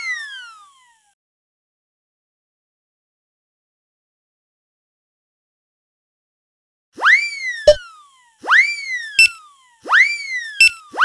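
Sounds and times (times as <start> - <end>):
cartoon whistling glide: 8.5 - 11.0.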